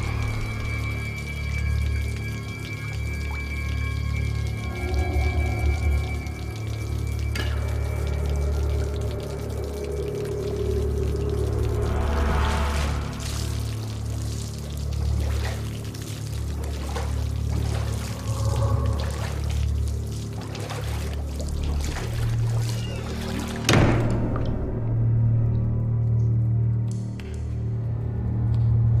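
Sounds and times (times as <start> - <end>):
water sloshing in bathtub: 0.0 - 24.6
low droning film score: 0.0 - 29.0.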